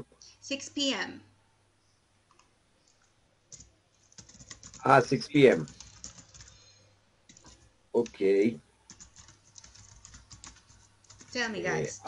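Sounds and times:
typing on computer keyboard: 0:03.5 - 0:06.6, 0:07.3 - 0:08.2, 0:08.9 - 0:11.6.

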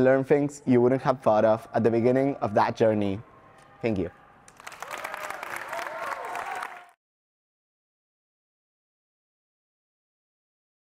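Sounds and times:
audience applauding: 0:04.5 - 0:07.0.

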